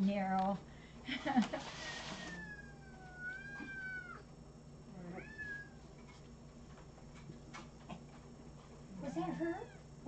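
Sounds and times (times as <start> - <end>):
cat meowing: 2.3 - 4.3, 5.0 - 5.8.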